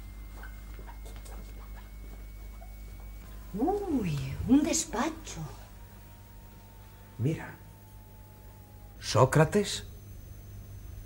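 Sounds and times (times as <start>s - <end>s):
faint high whine: 0.0s - 11.0s
low hum: 0.0s - 11.0s.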